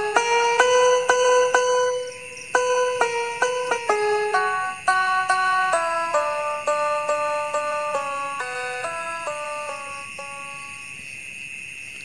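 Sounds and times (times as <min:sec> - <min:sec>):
chiming music notes: 0:00.0 - 0:11.0
crickets chirring: 0:00.0 - 0:12.0.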